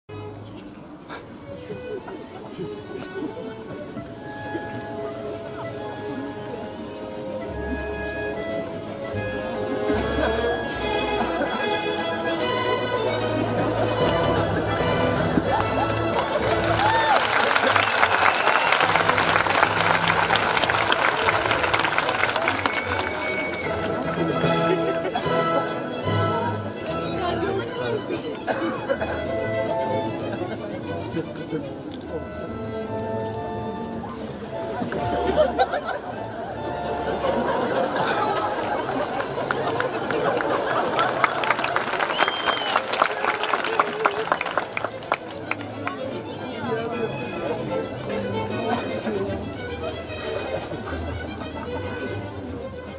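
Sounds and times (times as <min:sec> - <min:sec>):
audience chatter: 0:00.1 - 0:52.9
crowd voices: 0:00.1 - 0:52.9
faint orchestra: 0:00.1 - 0:52.9
audience clapping: 0:14.7 - 0:24.7, 0:37.5 - 0:46.1.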